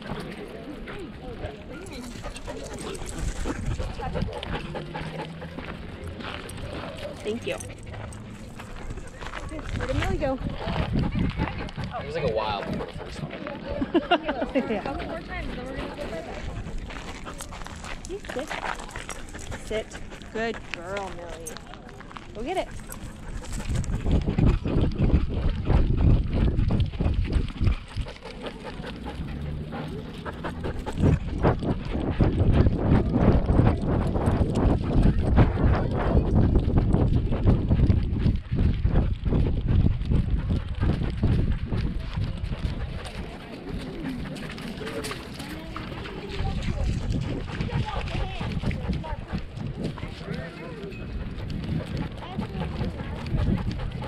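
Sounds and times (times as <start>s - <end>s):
wind buffeting microphone: 0.9s - 54.0s.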